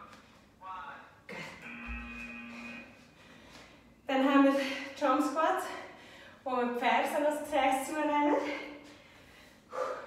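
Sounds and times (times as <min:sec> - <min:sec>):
held electronic tone: 0:01.6 - 0:03.0.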